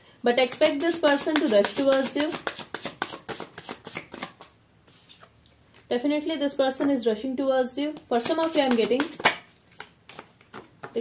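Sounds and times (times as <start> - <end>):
person speaking: 0.2 - 2.4, 5.9 - 9.3
cards being shuffled: 0.4 - 5.9, 8.0 - 11.0.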